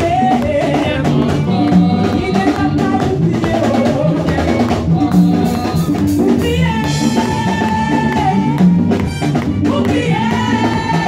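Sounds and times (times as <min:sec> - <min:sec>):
drum kit beat: 0:00.0 - 0:11.0
sustained bass notes: 0:00.0 - 0:11.0
women singing: 0:00.0 - 0:11.0.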